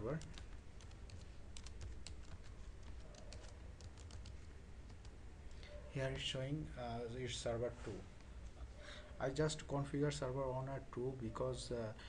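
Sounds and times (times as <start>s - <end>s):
keyboard typing: 0.0s - 5.2s
low steady hum: 0.0s - 12.0s.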